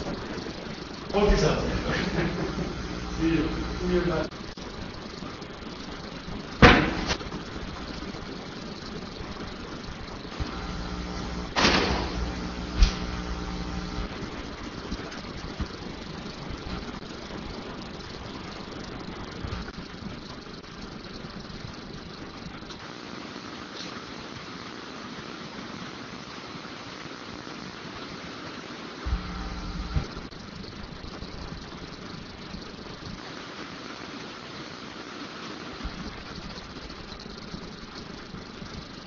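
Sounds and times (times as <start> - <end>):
room noise hiss: 0.0 - 39.0.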